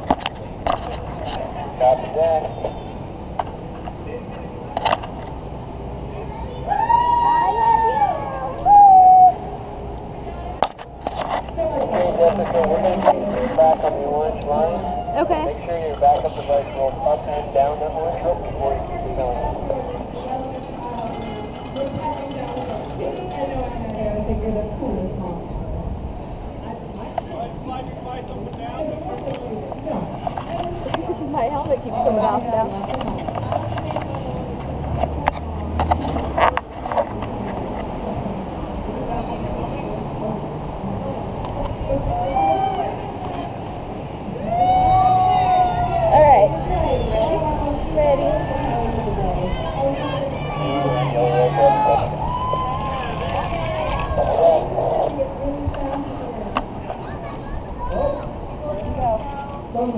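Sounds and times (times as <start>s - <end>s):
indistinct voices: 0.0s - 59.9s.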